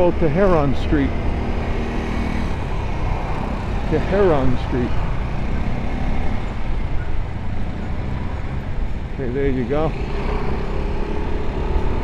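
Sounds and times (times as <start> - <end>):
road and traffic noise: 0.0 - 12.0.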